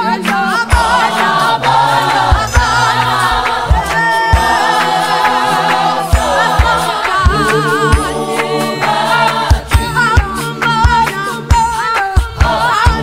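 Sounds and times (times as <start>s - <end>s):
gospel choir singing a capella: 0.0s - 13.0s
sharp hand claps: 0.1s - 13.0s.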